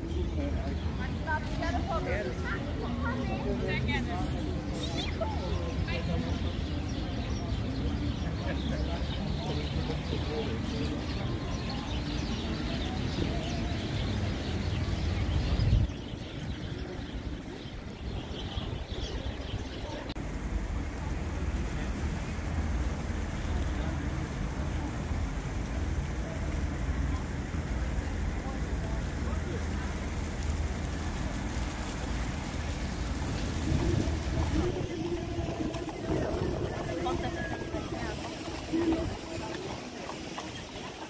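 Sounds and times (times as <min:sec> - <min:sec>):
voices of people: 0:00.0 - 0:41.0
wind rumble on microphone: 0:10.0 - 0:41.0
passing traffic: 0:19.2 - 0:41.0.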